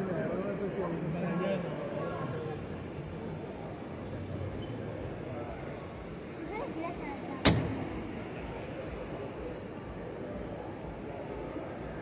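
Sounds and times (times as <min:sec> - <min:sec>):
murmur of voices in a hall: 0:00.0 - 0:12.0
sharp thump: 0:07.4 - 0:08.1.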